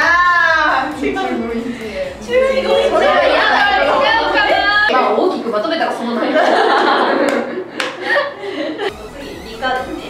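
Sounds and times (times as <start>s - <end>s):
women talking: 0.0s - 7.1s, 9.2s - 10.0s
women laughing: 0.9s - 4.9s, 6.2s - 9.0s.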